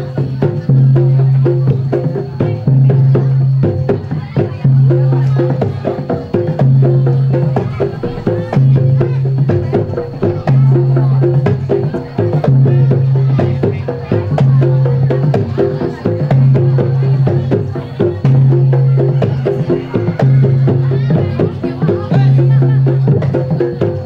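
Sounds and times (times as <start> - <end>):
hand drums beating fast rhythm: 0.0 - 24.0.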